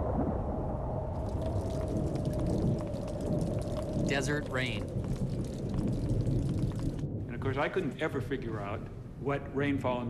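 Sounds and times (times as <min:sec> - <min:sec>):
steady low rumble: 0:00.0 - 0:10.0
raindrops ticking on sand: 0:01.1 - 0:10.0.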